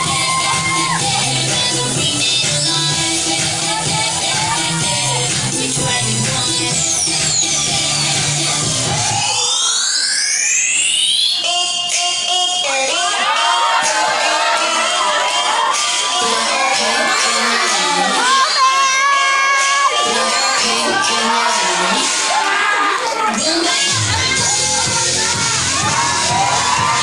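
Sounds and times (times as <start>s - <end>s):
crowd shouting and cheering: 0.0s - 27.0s
electronic dance music: 0.0s - 27.0s.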